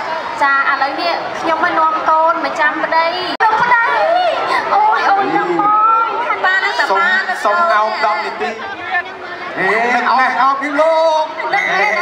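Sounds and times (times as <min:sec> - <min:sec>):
people talking through microphones: 0:00.0 - 0:12.0.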